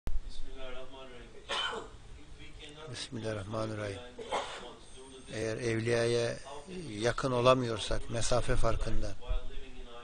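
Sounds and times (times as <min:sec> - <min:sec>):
man coughing: 0:01.5 - 0:01.9, 0:04.2 - 0:04.7.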